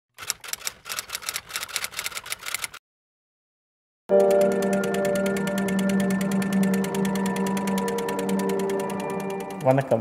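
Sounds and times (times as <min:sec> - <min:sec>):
typewriter keystroke clicks: 0:04.3 - 0:10.0.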